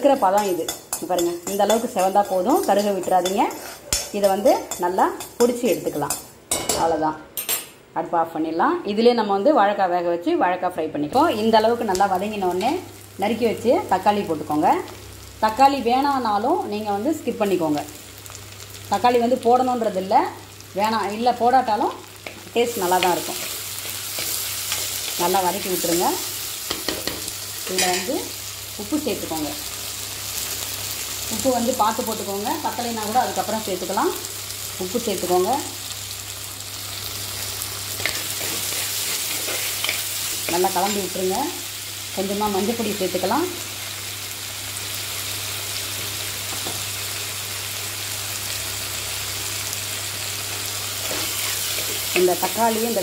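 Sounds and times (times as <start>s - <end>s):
food sizzling in hot oil: 0.0s - 6.8s, 11.2s - 53.0s
spatula stirring and scraping: 0.7s - 5.4s, 38.0s - 40.6s, 51.0s - 52.2s.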